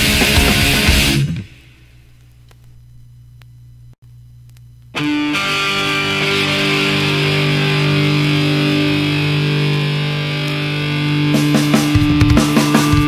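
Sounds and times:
distorted electric guitar chord ringing: 0.0s - 2.1s, 4.9s - 13.0s.

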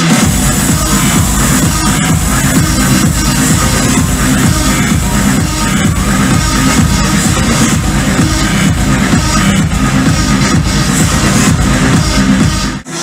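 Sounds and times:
heavy pounding bass line: 0.0s - 12.9s
electronic dance music: 0.0s - 13.0s.

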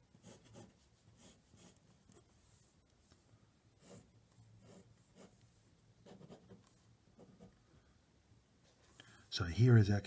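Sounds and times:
pen scratching on paper: 0.1s - 2.3s, 3.8s - 5.4s, 6.0s - 7.5s.

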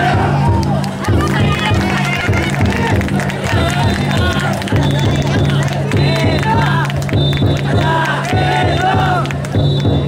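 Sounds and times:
crowd shouting and chanting: 0.0s - 10.0s
large drum beating steady rhythm: 0.0s - 10.0s.

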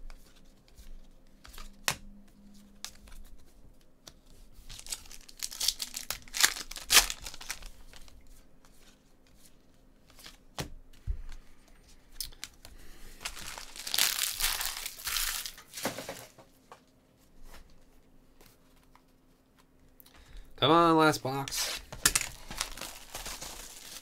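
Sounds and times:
foil pack crinkling: 4.7s - 8.2s, 13.2s - 16.2s, 21.6s - 24.0s.

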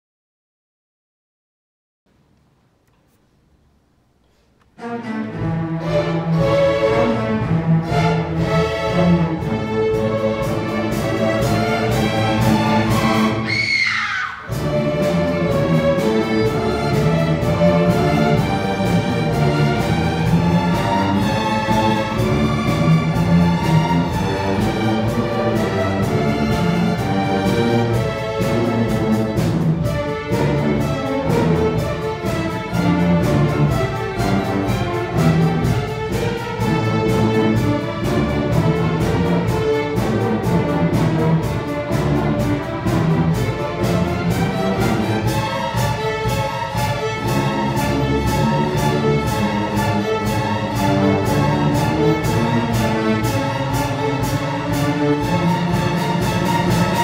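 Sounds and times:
string orchestra playing: 4.3s - 57.0s.

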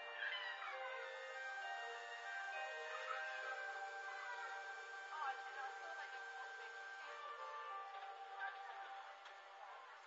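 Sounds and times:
music box melody: 0.0s - 10.0s.

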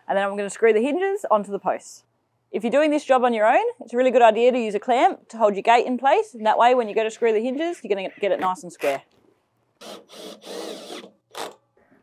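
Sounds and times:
cordless drill driving screws: 9.8s - 11.6s.

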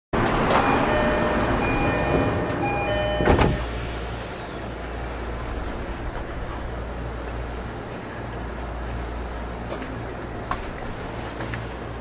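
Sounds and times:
train chime tones: 0.3s - 3.7s.

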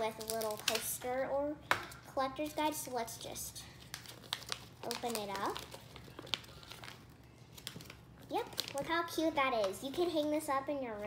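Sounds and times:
plastic packet crinkling: 0.0s - 1.0s, 3.7s - 10.0s.

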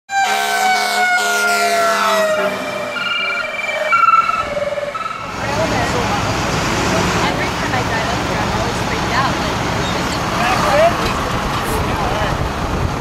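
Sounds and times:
emergency vehicle siren: 0.1s - 6.6s
outdoor rumble: 2.3s - 13.0s.

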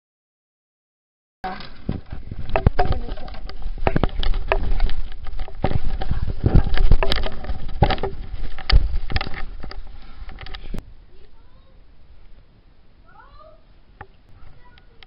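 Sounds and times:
handling noise on microphone: 1.4s - 11.3s
low rumble: 1.8s - 11.2s.

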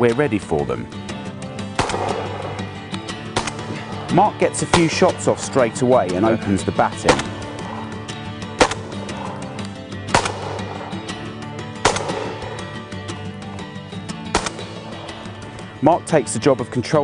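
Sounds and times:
background music: 0.0s - 17.0s
shotgun shots: 1.7s - 5.4s, 7.0s - 7.5s, 8.5s - 9.1s, 10.1s - 12.8s, 14.3s - 15.2s.

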